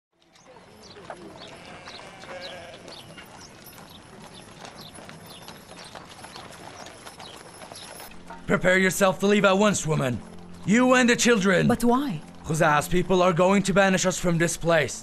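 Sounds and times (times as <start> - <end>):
sheep bleating: 0.2 - 3.4
horse hooves clip-clopping: 0.2 - 14.8.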